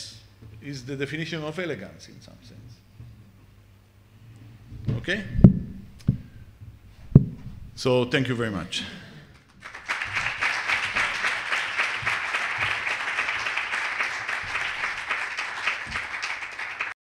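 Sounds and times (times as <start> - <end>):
audience applauding: 9.4 - 17.0.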